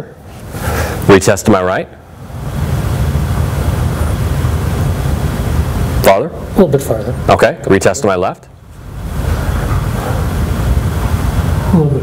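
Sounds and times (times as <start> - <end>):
steady low rumbling noise: 0.0 - 12.0.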